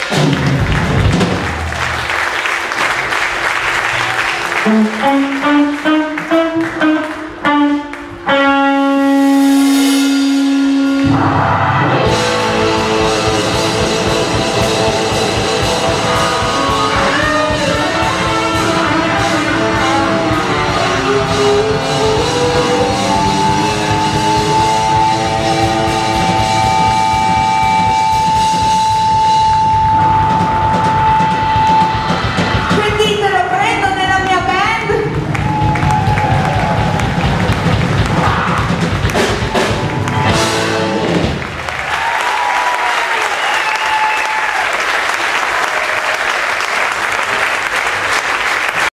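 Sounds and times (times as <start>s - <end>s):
drums and blues band: 0.0s - 46.2s
electric guitar notes: 4.4s - 41.7s.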